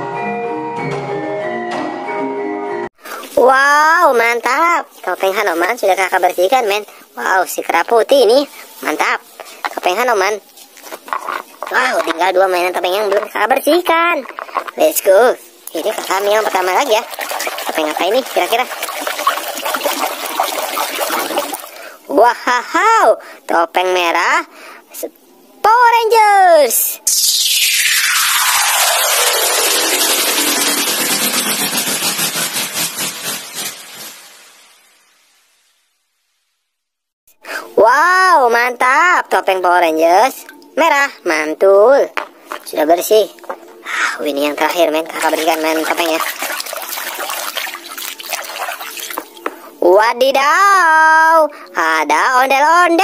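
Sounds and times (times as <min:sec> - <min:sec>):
hand scrubbing plastic mask: 0:08.5 - 0:22.0, 0:42.2 - 0:49.8
water splashing in a basin: 0:10.8 - 0:22.1, 0:42.5 - 0:49.8.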